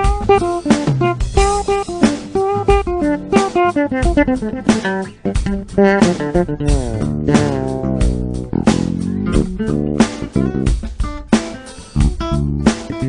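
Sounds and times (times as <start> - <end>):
electric bass guitar: 0.0 - 13.0
nylon-string guitar: 0.0 - 13.0.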